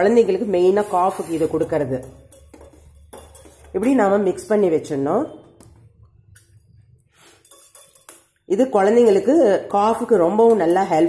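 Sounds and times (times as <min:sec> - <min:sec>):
metal spoon stirring in tumbler: 0:00.0 - 0:04.7, 0:06.3 - 0:11.0
spoon clinking: 0:01.1 - 0:04.8, 0:06.1 - 0:11.0.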